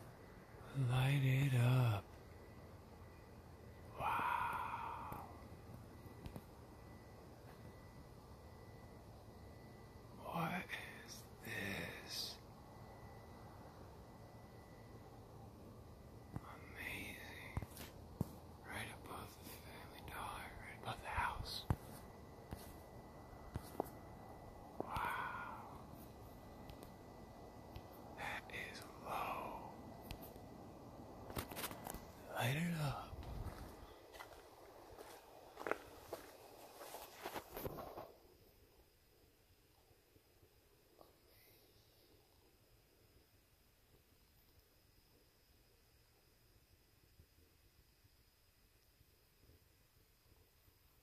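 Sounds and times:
faint hiss: 0.0 - 51.0
person whispering: 0.6 - 2.1, 3.9 - 5.4, 10.1 - 12.5, 16.3 - 18.0, 18.6 - 22.7, 24.8 - 26.1, 28.0 - 30.3, 31.3 - 34.4
faint scuffs and clicks: 31.3 - 32.2, 33.2 - 38.1.

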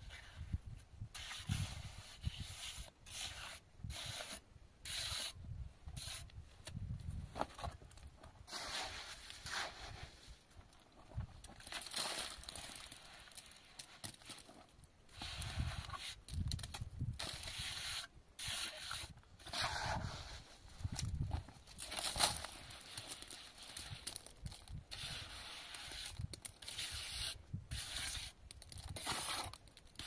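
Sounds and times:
trowel scraping wet plaster: 1.2 - 5.4, 17.3 - 20.4, 24.9 - 29.6.

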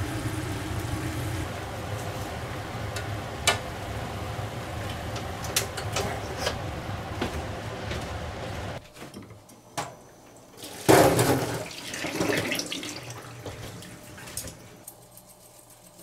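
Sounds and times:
hot water splashing into sink: 10.6 - 14.6.

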